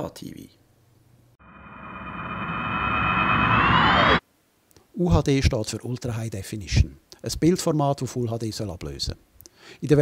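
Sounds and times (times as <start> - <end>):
buzzy synthesized transition effect: 1.4 - 4.2.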